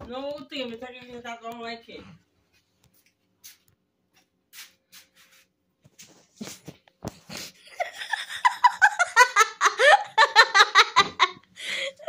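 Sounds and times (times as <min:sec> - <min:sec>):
soft brushing sounds: 0:02.4 - 0:06.8.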